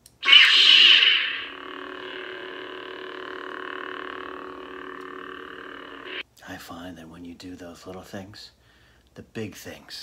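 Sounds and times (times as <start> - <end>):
lightsaber humming: 0.2 - 6.2.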